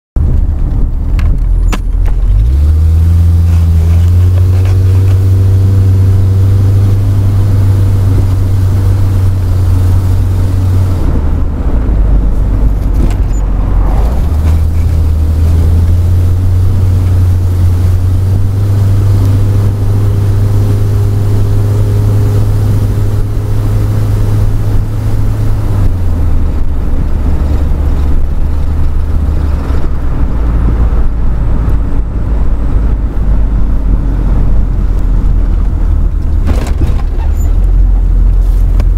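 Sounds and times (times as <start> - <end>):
car engine and road noise: 0.2 - 38.9.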